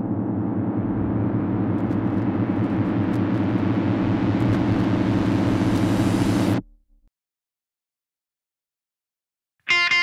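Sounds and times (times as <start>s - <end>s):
low rumbling drone: 0.0s - 6.6s.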